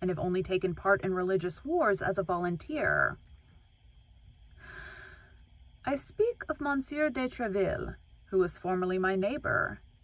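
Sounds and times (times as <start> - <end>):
woman speaking: 0.0 - 3.2, 5.8 - 9.8
woman breathing in: 4.5 - 5.4.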